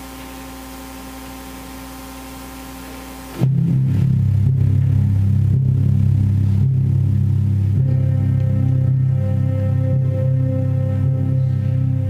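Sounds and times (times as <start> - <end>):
hiss and electrical hum: 0.0 - 12.0
ensemble playing low sustained chord: 3.4 - 12.0.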